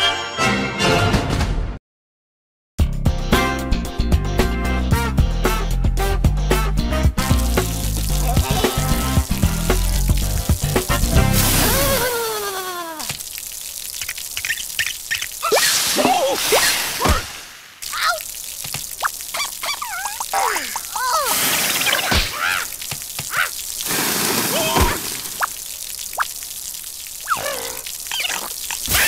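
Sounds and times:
cartoon background music: 0.0 - 1.7, 3.1 - 12.0
water trickling and dripping: 7.2 - 29.0.

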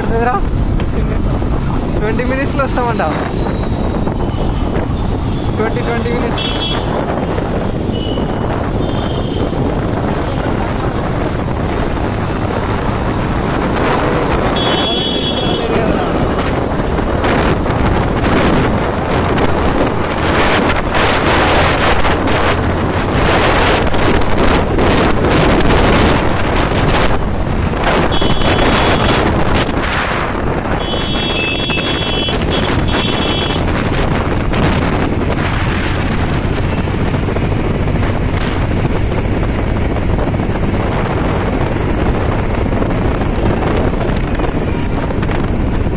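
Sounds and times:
motorcycle engine: 0.0 - 45.9
road noise: 0.0 - 45.9
wind buffeting microphone: 0.0 - 45.9.

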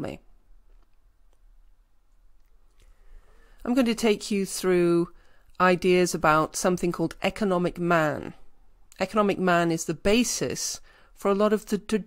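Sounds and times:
woman's voice: 0.0 - 0.3, 3.6 - 12.0.

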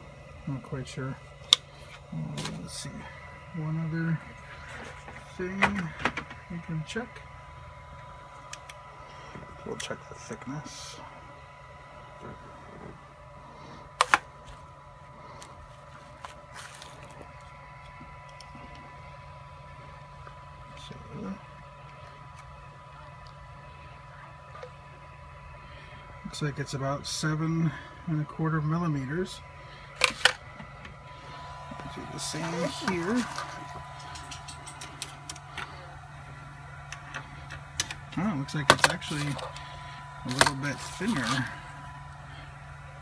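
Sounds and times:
low room hum: 0.0 - 43.0
thin steady whine: 0.0 - 43.0.

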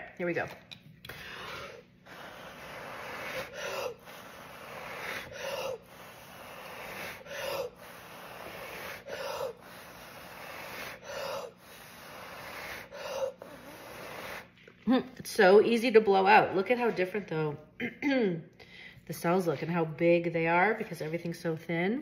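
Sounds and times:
quick breaths: 1.0 - 14.6
person blowing hard through mouth: 1.1 - 14.6.

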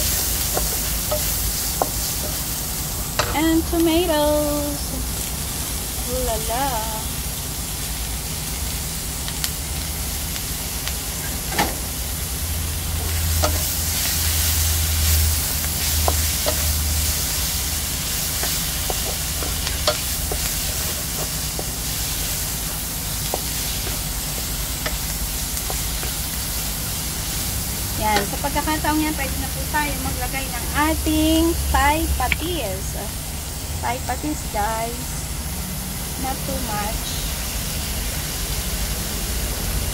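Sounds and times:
food sizzling in a wok: 0.0 - 39.9.

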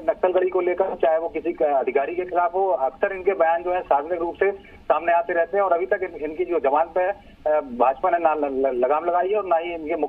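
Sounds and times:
man talking over telephone: 0.0 - 10.0.

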